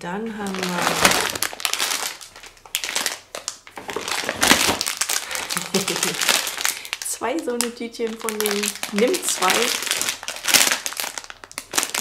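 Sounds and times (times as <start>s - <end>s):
plastic packets crinkling: 0.4s - 12.0s.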